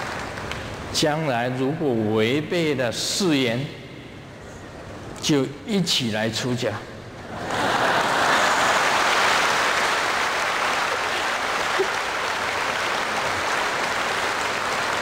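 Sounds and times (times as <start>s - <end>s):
audience applause: 7.4s - 15.0s.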